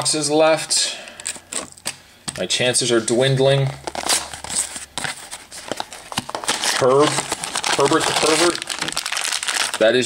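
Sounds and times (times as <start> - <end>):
foil pouch crinkling: 3.8 - 10.0.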